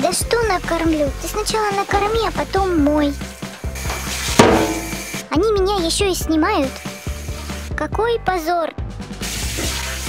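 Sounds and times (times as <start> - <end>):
background music: 0.0 - 10.0
shower water spraying: 0.9 - 5.3, 6.6 - 7.8, 9.2 - 10.0.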